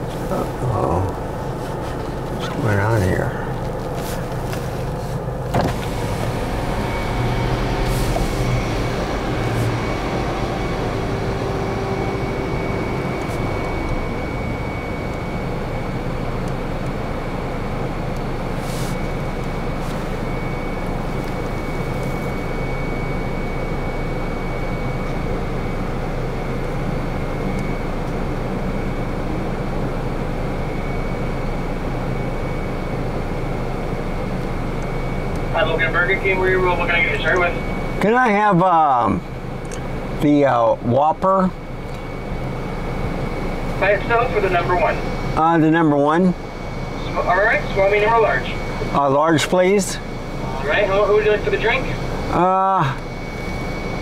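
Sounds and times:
car engine idling: 0.0 - 31.4.

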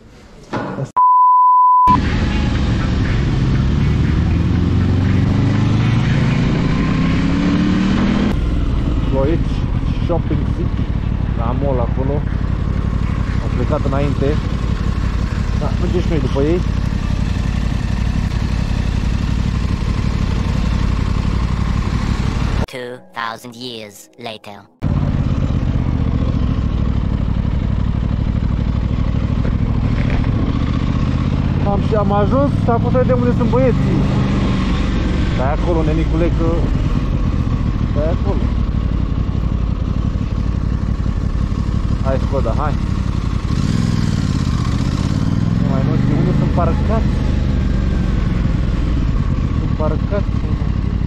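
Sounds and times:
motorcycle engine running: 2.0 - 22.6, 24.8 - 51.0.

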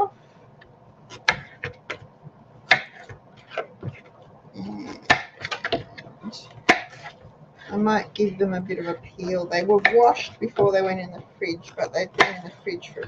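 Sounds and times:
knife chopping on wooden board: 1.1 - 2.0, 2.7 - 4.0, 6.6 - 7.2.

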